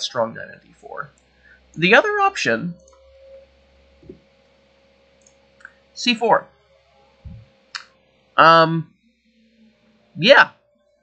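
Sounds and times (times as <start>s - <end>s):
thin steady hum: 0.0s - 11.0s.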